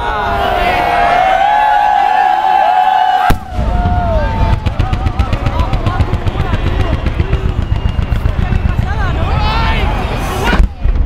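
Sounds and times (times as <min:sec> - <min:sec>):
rapid firework cracks: 0:03.3 - 0:09.5
loud firework bang: 0:03.3 - 0:09.6
low rumble: 0:03.3 - 0:11.0
firework whistles: 0:06.1 - 0:10.7.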